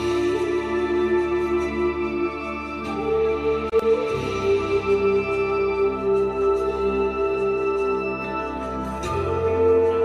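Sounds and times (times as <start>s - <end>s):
pan flute music: 0.0s - 10.0s
soft sustained backing: 0.0s - 10.0s.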